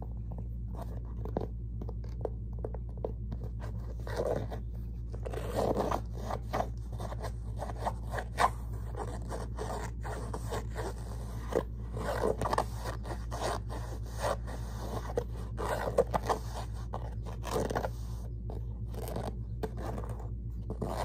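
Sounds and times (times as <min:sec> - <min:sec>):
fingernails scratching fabric: 0:03.5 - 0:21.0.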